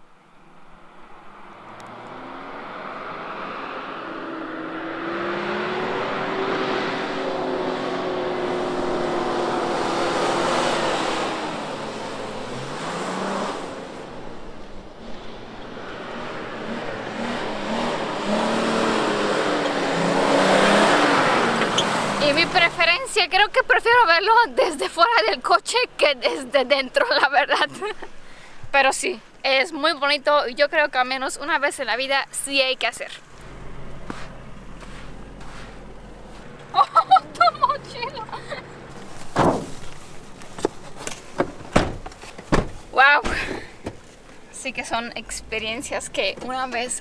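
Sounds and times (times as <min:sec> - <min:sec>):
suv engine revving: 0:00.9 - 0:23.2, 0:33.2 - 0:47.0.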